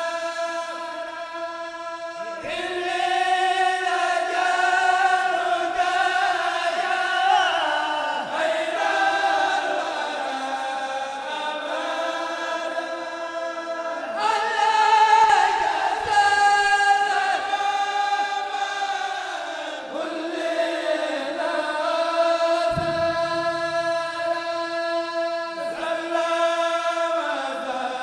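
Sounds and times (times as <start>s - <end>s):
men chanting together: 0.0s - 28.0s.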